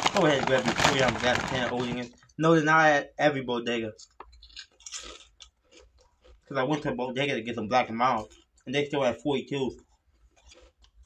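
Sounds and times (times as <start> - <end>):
crunching potato chip: 0.0 - 2.1, 4.4 - 6.4.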